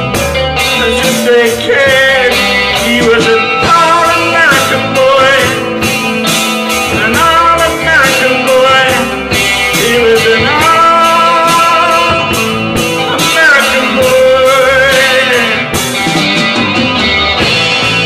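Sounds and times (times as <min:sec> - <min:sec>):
bending guitar notes: 0:00.0 - 0:18.0
live rock band playing: 0:00.0 - 0:18.0
person singing: 0:00.0 - 0:18.0
steady drumbeat: 0:00.0 - 0:18.0.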